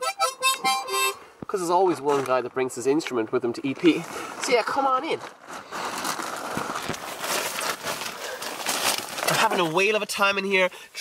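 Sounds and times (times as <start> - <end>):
plastic bag crinkling: 5.2 - 9.9
tent fabric rustling: 5.3 - 10.0.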